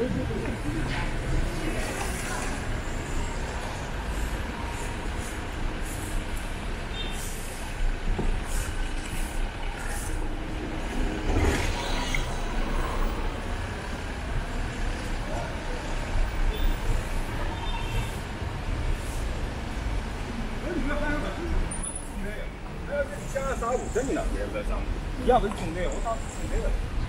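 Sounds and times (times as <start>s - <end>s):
street traffic rumble: 0.0s - 27.0s.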